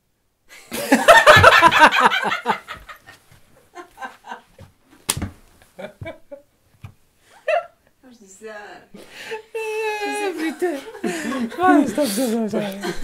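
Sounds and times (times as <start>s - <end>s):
men laughing quietly: 0.5s - 4.6s, 5.6s - 6.5s
sharp smack: 5.1s - 5.4s.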